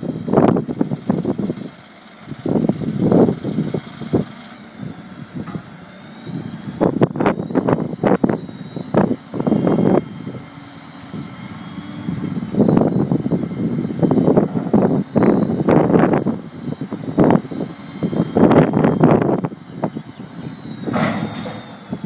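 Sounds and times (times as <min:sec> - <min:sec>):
hydraulic whine: 0:00.0 - 0:22.0
truck engine running: 0:00.0 - 0:22.0.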